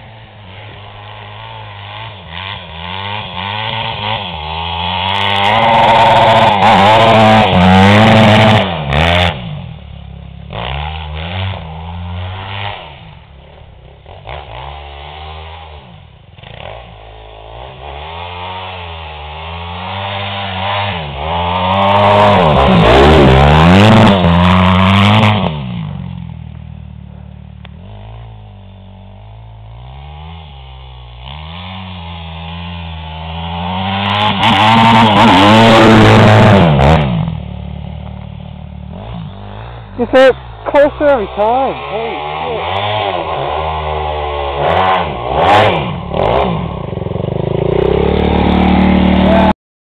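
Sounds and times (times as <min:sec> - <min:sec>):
dirt bike engine revving: 0:00.0 - 0:49.6.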